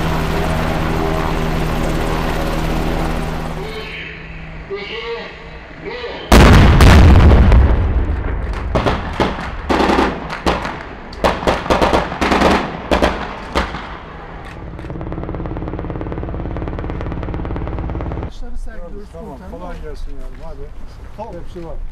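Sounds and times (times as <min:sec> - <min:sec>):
helicopter rotor and engine: 0:00.0 - 0:06.0, 0:13.4 - 0:21.6
loud blast: 0:06.3 - 0:14.1
rapid gunfire bursts: 0:08.7 - 0:13.8.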